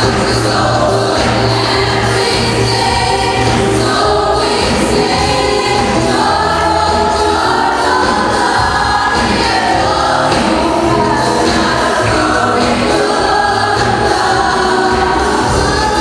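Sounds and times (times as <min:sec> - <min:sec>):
choir singing gospel: 0:00.0 - 0:16.0
instrumental accompaniment: 0:00.0 - 0:16.0.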